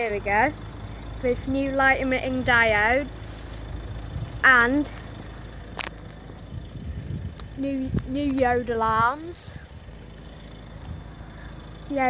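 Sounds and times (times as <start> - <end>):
wind buffeting microphone: 0.2 - 11.9.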